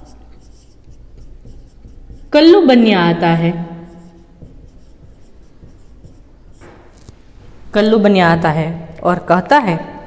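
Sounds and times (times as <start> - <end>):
marker scratching on whiteboard: 0.0 - 7.4.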